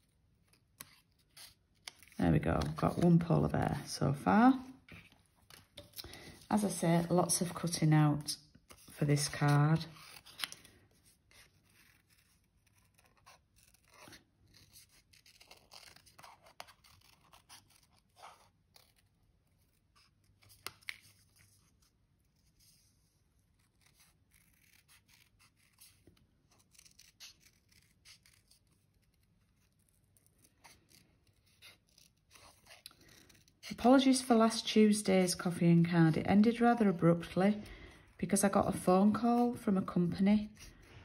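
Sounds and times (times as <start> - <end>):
scissors snipping paper: 0.4 - 3.3, 11.3 - 21.4, 23.5 - 34.5.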